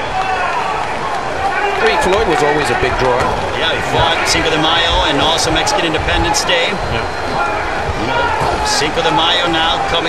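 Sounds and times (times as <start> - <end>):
man commentating: 1.7 - 10.0.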